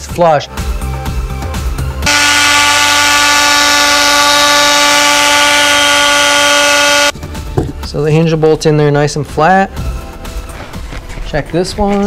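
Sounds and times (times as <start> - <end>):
loud droning tone with hiss: 2.1 - 7.1.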